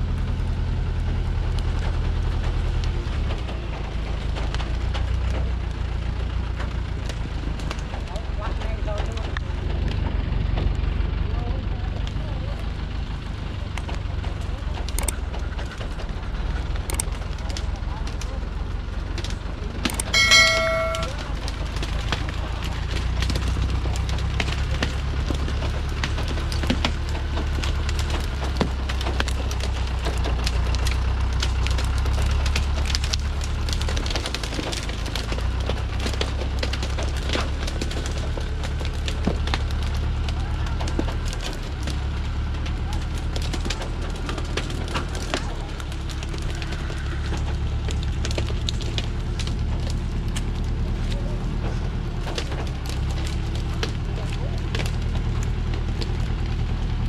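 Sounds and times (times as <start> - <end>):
diesel truck engine rumbling: 0.0 - 57.0
cracks and clicks: 1.5 - 10.8, 13.1 - 57.0
brief pitched tone: 20.1 - 21.2.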